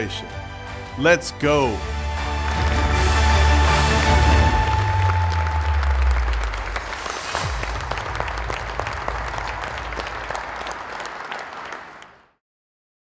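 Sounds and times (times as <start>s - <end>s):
background music: 0.0s - 11.1s
large audience applauding: 2.0s - 12.4s.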